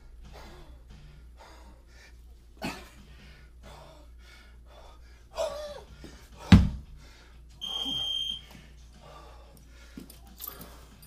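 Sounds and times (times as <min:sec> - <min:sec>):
kettlebell thudding on floor: 0:06.4 - 0:06.9
long high-pitched electronic beep: 0:07.6 - 0:08.4.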